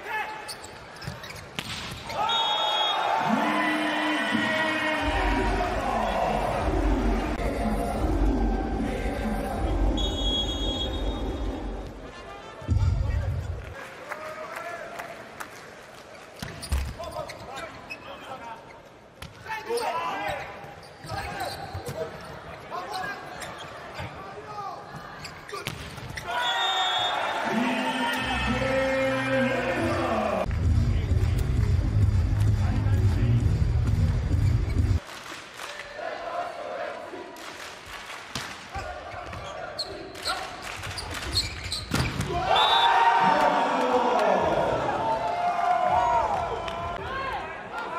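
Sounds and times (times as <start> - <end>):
sneakers squeaking on court: 0.3 - 2.0, 16.4 - 18.3, 19.7 - 24.2, 24.9 - 26.3, 39.1 - 42.2
players shouting: 2.1 - 12.8, 42.2 - 47.9.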